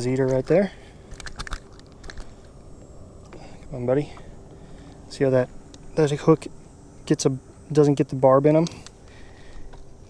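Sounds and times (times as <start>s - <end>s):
faint steady hiss: 0.0s - 10.0s
hands handling fish clicks: 1.1s - 2.4s.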